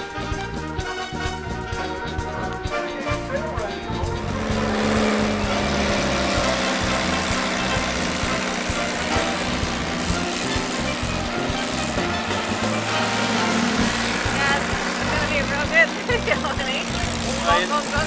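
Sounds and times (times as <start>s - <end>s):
dune buggy engine running: 0.0s - 18.0s.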